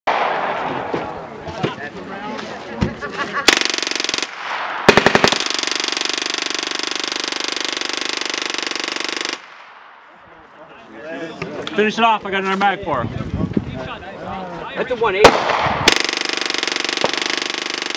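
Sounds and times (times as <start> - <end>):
submachine gun firing full-auto: 3.5 - 9.6, 15.3 - 17.9.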